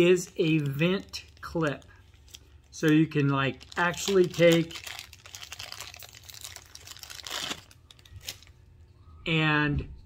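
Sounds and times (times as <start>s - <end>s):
plastic bag crinkling: 0.0s - 8.6s.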